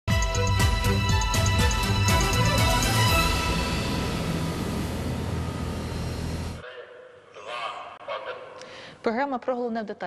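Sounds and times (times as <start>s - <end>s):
low hum: 2.3s - 6.6s
noisy whooshing swell: 2.4s - 6.6s.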